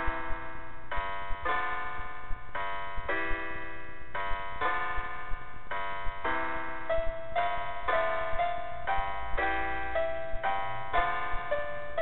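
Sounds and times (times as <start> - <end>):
electronic piano chords: 0.0 - 12.0.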